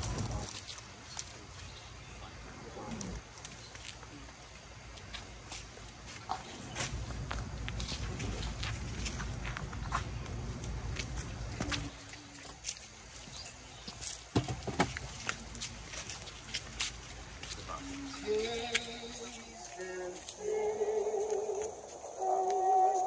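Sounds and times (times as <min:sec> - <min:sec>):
footsteps on brick paving: 0:03.3 - 0:23.0.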